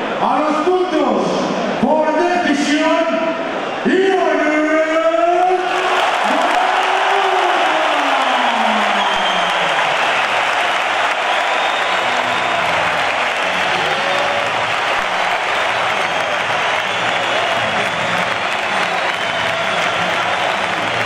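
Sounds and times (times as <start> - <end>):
arena crowd applauding: 5.4 - 21.0.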